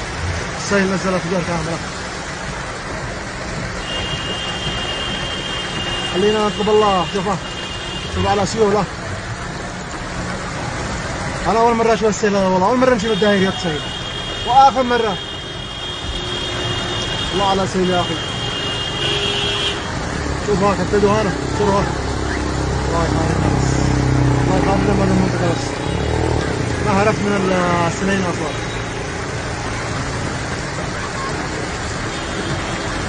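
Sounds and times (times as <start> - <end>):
cars driving through water: 0.0 - 33.0
floodwater rushing: 0.0 - 33.0
heavy rain: 0.0 - 33.0.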